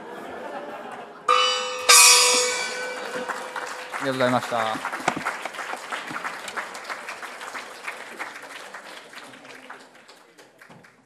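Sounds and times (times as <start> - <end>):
bell ringing: 1.3 - 5.1.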